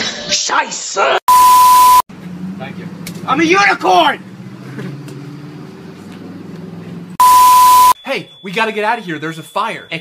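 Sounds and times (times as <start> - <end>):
loud electronic bleep: 1.3 - 2.0, 7.2 - 8.5.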